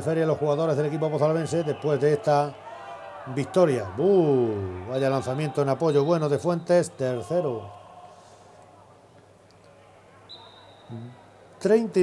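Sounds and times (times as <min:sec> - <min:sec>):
sports hall background noise: 0:00.0 - 0:12.0
man's voice: 0:03.3 - 0:07.9.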